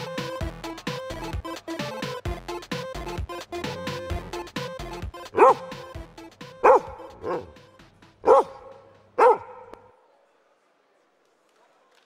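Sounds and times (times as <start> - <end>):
dog barking: 5.3 - 5.9, 6.6 - 7.6, 8.2 - 9.8.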